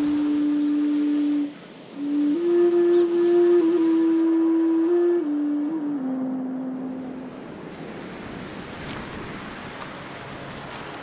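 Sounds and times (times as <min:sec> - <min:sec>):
low flute notes: 0:00.0 - 0:07.6.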